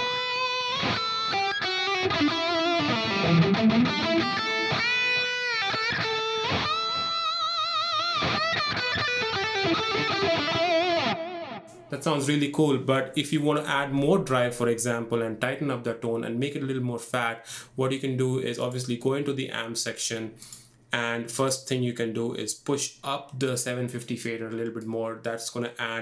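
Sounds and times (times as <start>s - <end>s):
electric guitar lead with delay: 0.0s - 11.8s.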